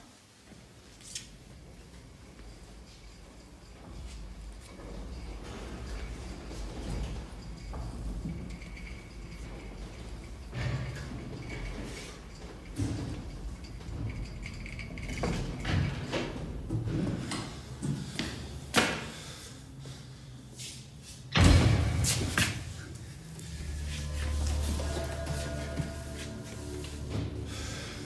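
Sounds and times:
heavy door banging shut: 0:21.3 - 0:22.7.

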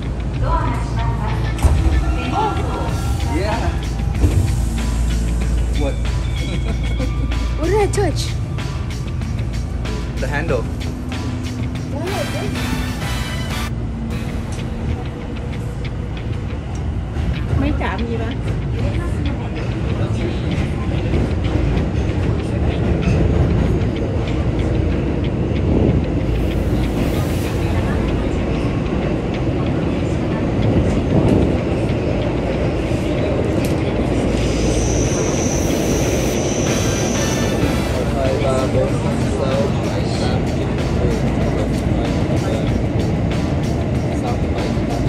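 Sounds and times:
subway train rumbling: 0:00.0 - 0:45.0.

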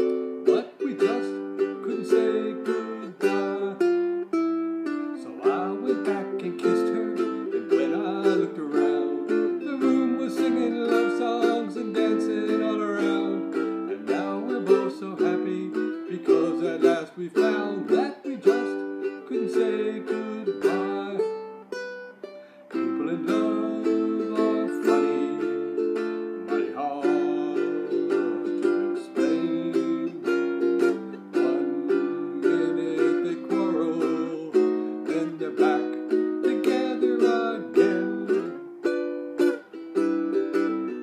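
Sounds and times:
ukulele playing: 0:00.0 - 0:41.0.

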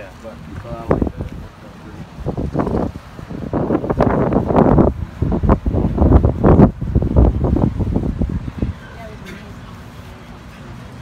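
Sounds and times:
wind buffeting microphone: 0:00.0 - 0:09.6.

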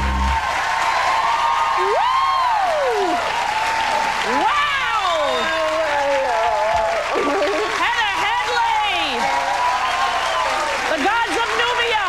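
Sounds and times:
audience clapping: 0:00.0 - 0:12.0
cheers and whoops: 0:00.0 - 0:12.0.

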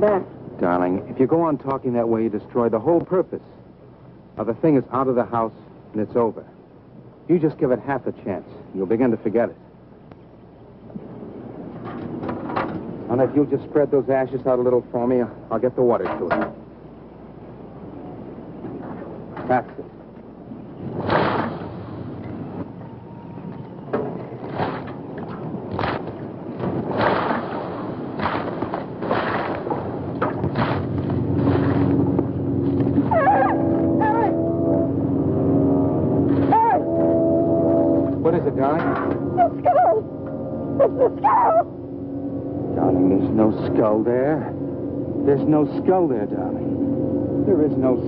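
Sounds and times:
woman's wavering cries: 0:39.4 - 0:40.1, 0:40.8 - 0:41.7.

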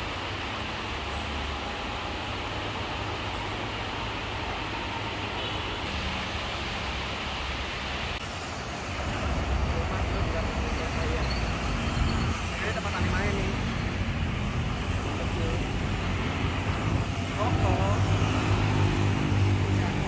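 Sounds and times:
cars and motorcycles passing: 0:02.2 - 0:20.0.

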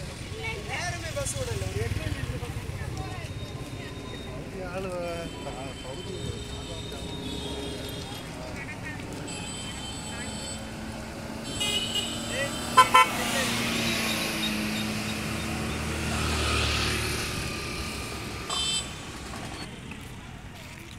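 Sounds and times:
scooter engine passing: 0:00.0 - 0:05.3, 0:06.8 - 0:19.9
vehicle horn toots: 0:11.4 - 0:13.4, 0:18.5 - 0:19.0.

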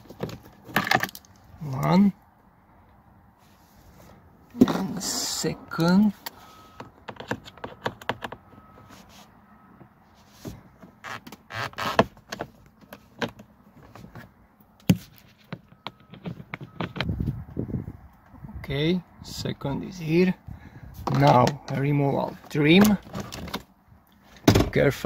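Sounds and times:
rustle of handling: 0:08.6 - 0:10.8.

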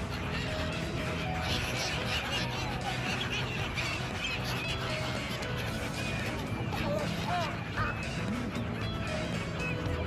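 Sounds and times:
gulls calling: 0:00.0 - 0:10.0.

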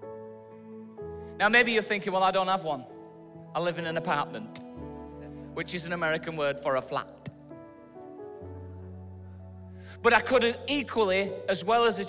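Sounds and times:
background music of held chords: 0:00.0 - 0:12.0.

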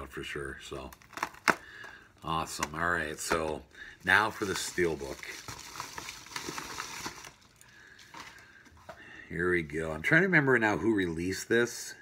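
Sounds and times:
packaging crinkling and rustling: 0:00.7 - 0:08.8.

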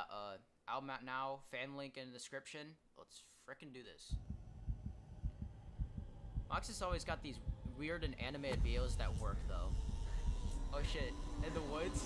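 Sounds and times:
faint steady hum: 0:04.1 - 0:12.0
low dull thumps: 0:04.1 - 0:12.0.

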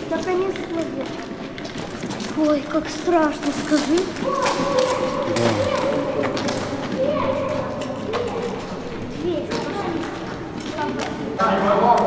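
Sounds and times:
indistinct voices speaking: 0:05.0 - 0:06.2.

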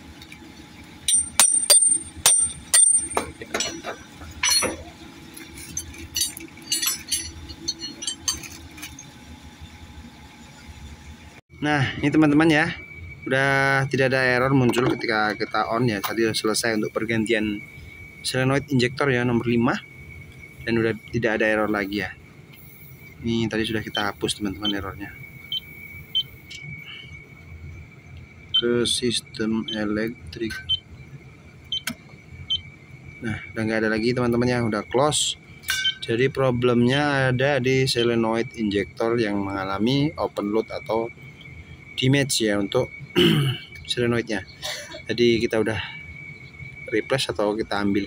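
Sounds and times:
low hum: 0:00.0 - 0:44.1
metal tools clinking on metal: 0:01.1 - 0:09.2, 0:35.6 - 0:36.2
thin high-pitched tone: 0:23.6 - 0:25.1.

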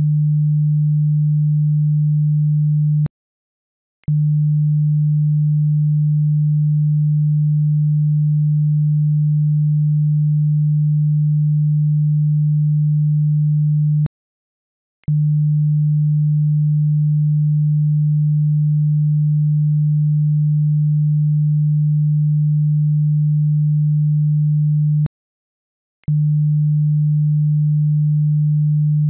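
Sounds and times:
low sine test tone: 0:00.0 - 0:03.1, 0:04.1 - 0:14.1, 0:15.1 - 0:25.1, 0:26.0 - 0:29.0.

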